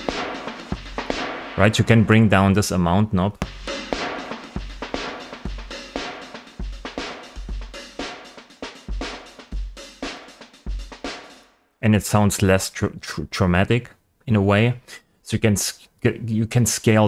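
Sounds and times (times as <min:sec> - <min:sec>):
drum kit loop: 0:00.0 - 0:02.8, 0:03.4 - 0:11.5.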